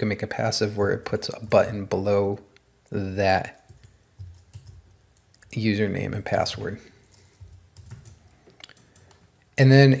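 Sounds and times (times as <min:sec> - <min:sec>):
computer keyboard typing: 0:01.1 - 0:01.8, 0:03.5 - 0:05.7, 0:06.3 - 0:09.3.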